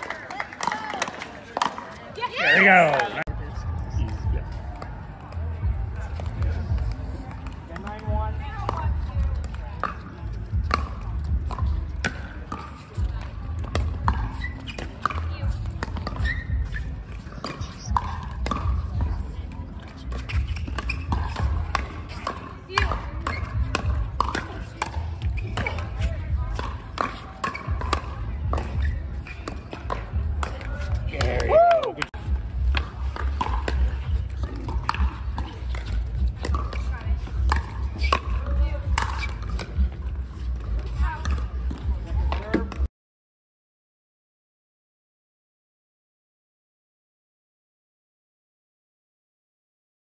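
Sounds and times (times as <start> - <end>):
ball bouncing on hard court: 4.2 - 31.5, 32.1 - 42.9.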